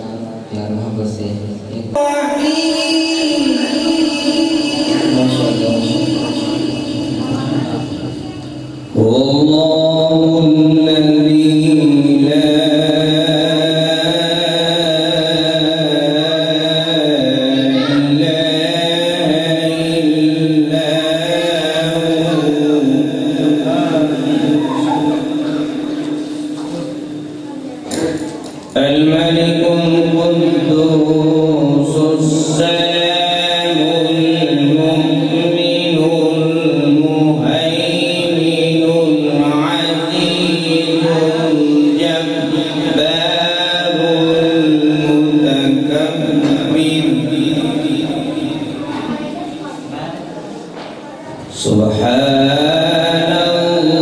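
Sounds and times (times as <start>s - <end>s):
man chanting into microphone: 0.0s - 50.2s, 51.4s - 54.0s.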